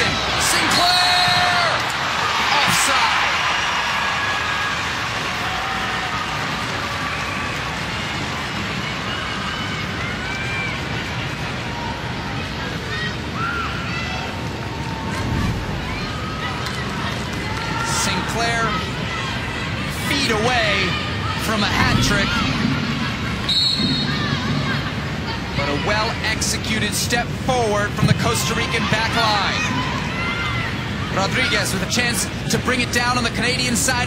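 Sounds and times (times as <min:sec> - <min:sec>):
crowd reaction: 0:00.0 - 0:12.0
stadium crowd murmur: 0:00.0 - 0:34.0.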